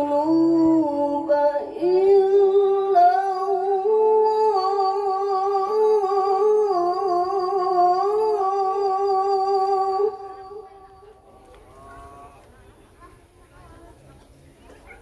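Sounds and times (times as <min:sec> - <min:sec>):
woman chanting melodic recitation: 0:00.0 - 0:12.4.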